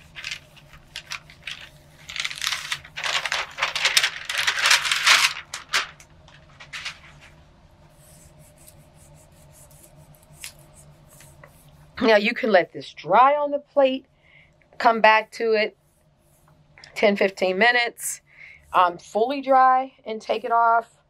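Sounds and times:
hands rubbing paper: 0.0 - 6.0, 6.6 - 12.7.

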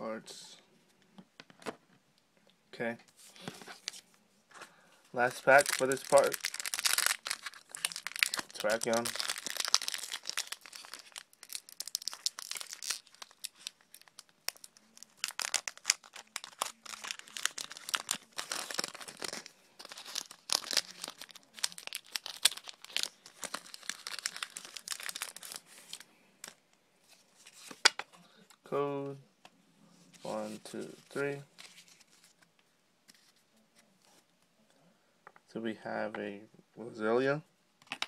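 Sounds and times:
foil wrapper crinkling: 5.3 - 26.6
foil wrapper tearing: 5.4 - 26.0.

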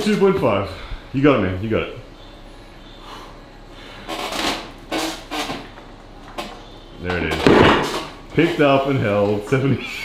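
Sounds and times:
low room noise: 0.0 - 10.0
forced breathing: 0.6 - 1.2, 2.8 - 4.2.

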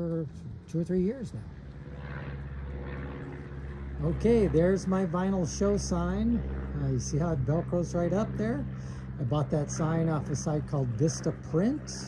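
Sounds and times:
engine drone: 0.0 - 12.0.

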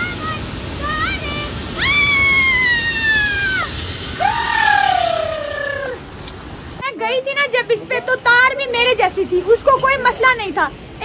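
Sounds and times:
background hiss: 0.0 - 11.0
woman screaming excitedly: 1.8 - 6.0.

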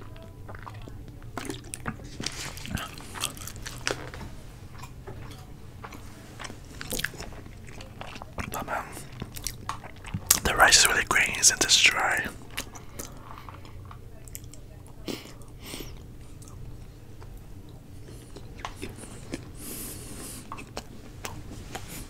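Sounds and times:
chewing with wet mouth smacks: 0.0 - 10.5, 12.4 - 22.0.

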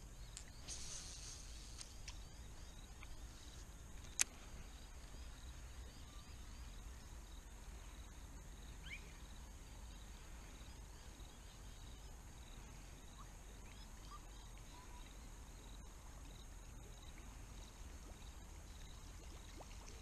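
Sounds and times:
insect drone: 0.0 - 20.0.

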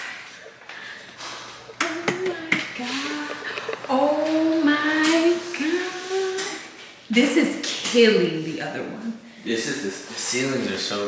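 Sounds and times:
woman singing wordless tune: 1.7 - 8.2.

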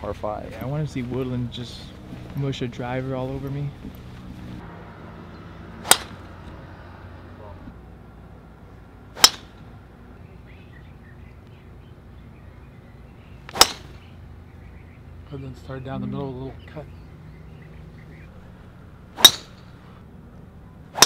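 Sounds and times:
golf driver striking ball: 5.8 - 6.2, 9.2 - 9.6, 13.5 - 14.0, 19.2 - 19.6.

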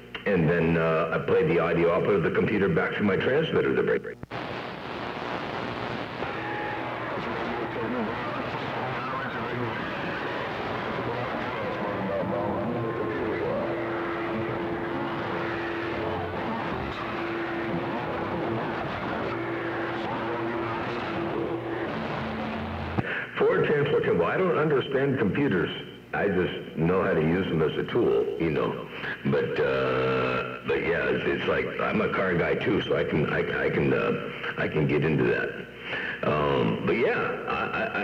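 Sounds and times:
radio static hiss: 0.0 - 38.0
garbled distant voices: 6.7 - 21.9.

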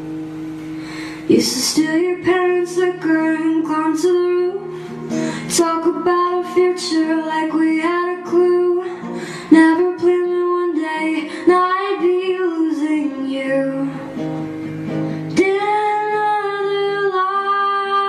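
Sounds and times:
acoustic guitar: 0.0 - 18.0
woman singing pop ballad: 1.3 - 14.2, 15.3 - 18.0.

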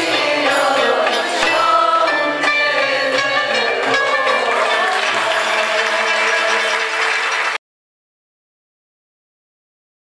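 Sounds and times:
choir singing with strings: 0.0 - 7.3
audience applause: 4.1 - 7.6.

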